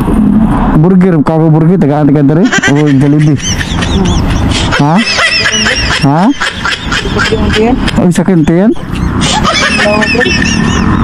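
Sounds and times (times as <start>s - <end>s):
men talking: 0.7s - 10.8s.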